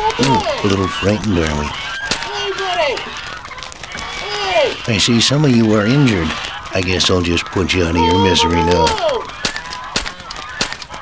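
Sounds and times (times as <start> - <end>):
shotgun shots with echo: 8.9 - 11.0.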